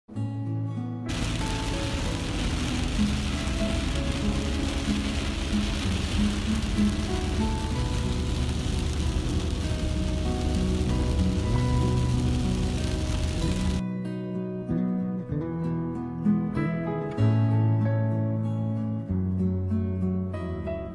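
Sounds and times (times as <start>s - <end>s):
heavy rain hitting a car: 1.1s - 13.8s
wet road noise: 1.1s - 13.8s.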